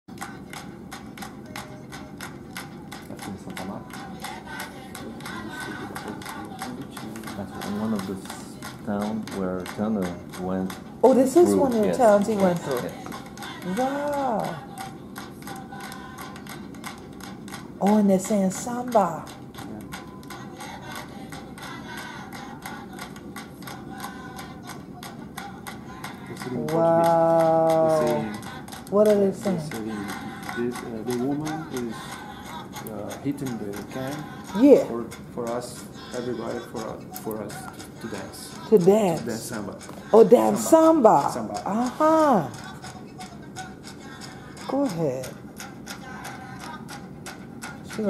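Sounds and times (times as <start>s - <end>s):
faint singing: 0.1s - 48.0s
metal can beaten in rhythm: 0.1s - 48.0s
samba percussion from laptop: 0.1s - 48.0s.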